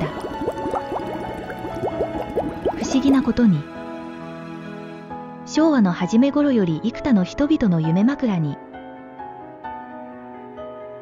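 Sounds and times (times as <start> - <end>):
underwater bubbling bloops: 0.0 - 3.4
soft background music: 0.0 - 11.0.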